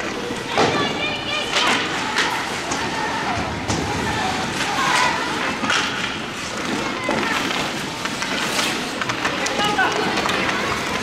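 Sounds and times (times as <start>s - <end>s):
hockey sticks clacking: 0.0s - 11.0s
skate blades scraping ice: 0.0s - 11.0s.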